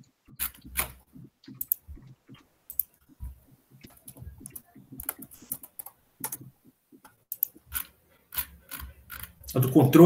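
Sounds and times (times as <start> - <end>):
typing on computer keyboard: 3.8 - 6.5, 7.3 - 9.5.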